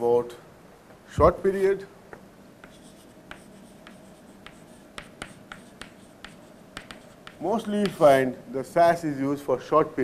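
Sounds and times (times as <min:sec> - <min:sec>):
faint room hum: 0:00.0 - 0:10.0
chalk scratching on chalkboard: 0:02.6 - 0:08.1.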